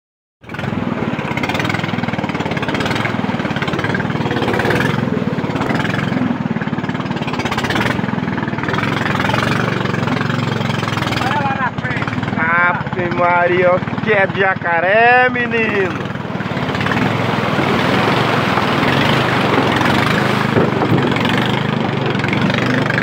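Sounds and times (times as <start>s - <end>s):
boat motor running: 0.4s - 23.0s
person speaking: 11.2s - 16.1s.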